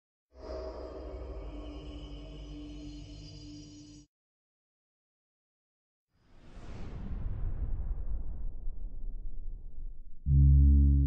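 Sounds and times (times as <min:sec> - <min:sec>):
music track: 0:10.3 - 0:11.0.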